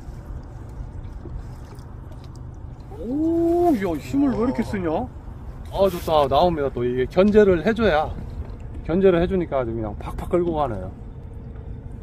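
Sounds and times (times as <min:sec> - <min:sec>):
boat engine low rumble: 0:00.0 - 0:12.0
water against hull: 0:00.0 - 0:12.0.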